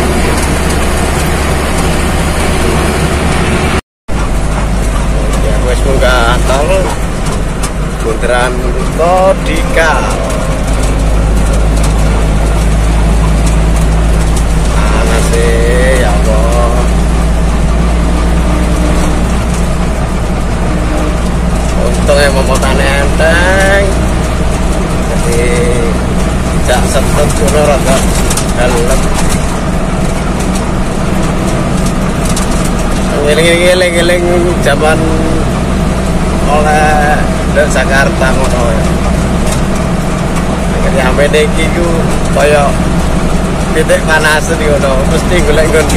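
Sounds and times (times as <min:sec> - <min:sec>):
indistinct voices: 0:00.0 - 0:45.9
road noise: 0:00.0 - 0:45.9
truck engine drone: 0:00.0 - 0:45.9.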